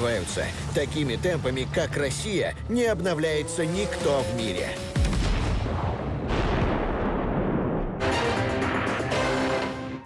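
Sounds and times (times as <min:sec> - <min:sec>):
artillery fire blasts: 0:05.0 - 0:08.0.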